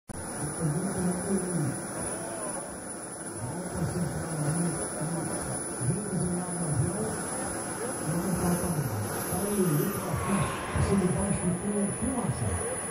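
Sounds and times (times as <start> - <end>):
faint aircraft engine drone: 0.1 - 12.9
thin high whine: 0.2 - 12.9.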